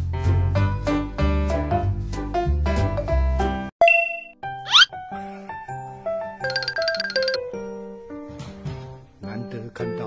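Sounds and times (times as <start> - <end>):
light tune: 6.4 - 7.5.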